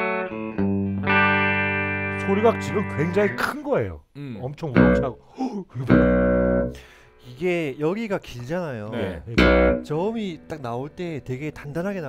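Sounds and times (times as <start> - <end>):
clean electric guitar low notes: 0.0 - 3.4, 4.8 - 5.2, 5.9 - 6.8, 9.1 - 10.5.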